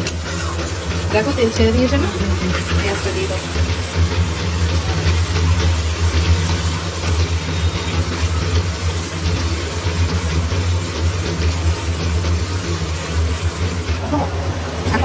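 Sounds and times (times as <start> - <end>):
metal spatula stirring: 0.0 - 3.9
spices sizzling in a pan: 0.0 - 14.3
low machine hum: 0.0 - 15.0.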